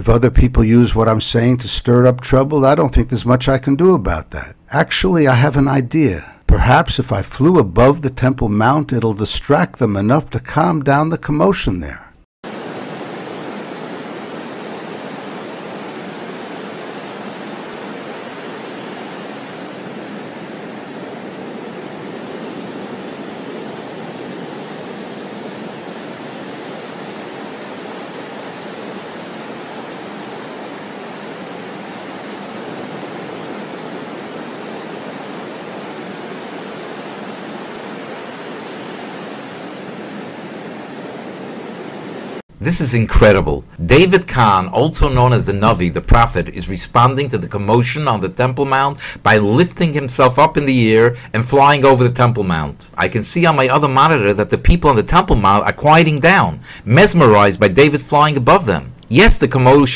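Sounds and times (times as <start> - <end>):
steady rushing hiss: 12.5 - 42.8.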